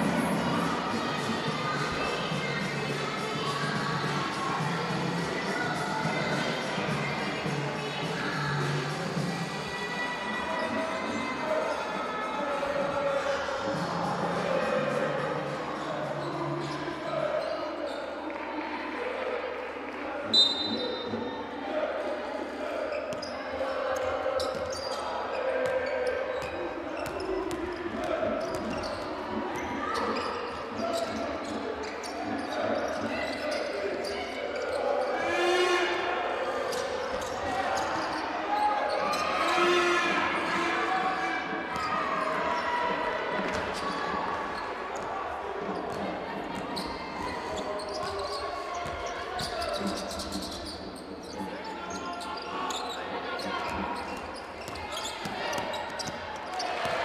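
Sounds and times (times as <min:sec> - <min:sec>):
voices: 0:00.0 - 0:57.0.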